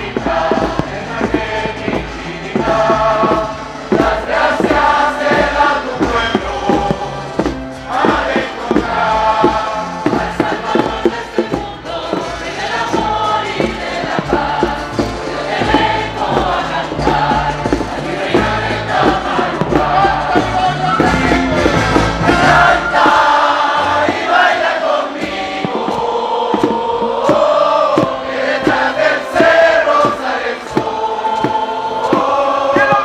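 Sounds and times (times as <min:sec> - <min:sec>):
crowd singing together: 0:00.0 - 0:33.0
music with sharp beats: 0:00.0 - 0:33.0.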